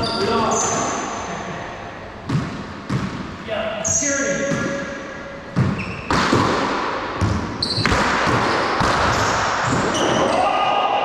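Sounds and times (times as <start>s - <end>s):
ball bouncing on wooden floor: 2.3s - 3.3s, 5.5s - 10.2s.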